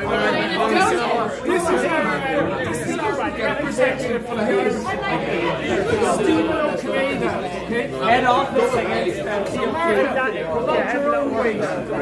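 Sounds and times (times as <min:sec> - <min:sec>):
men's voices talking over one another: 0:00.0 - 0:12.0.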